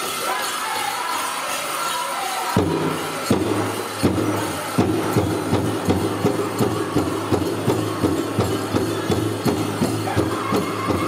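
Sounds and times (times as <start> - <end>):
drum struck in unison: 2.6 - 11.0.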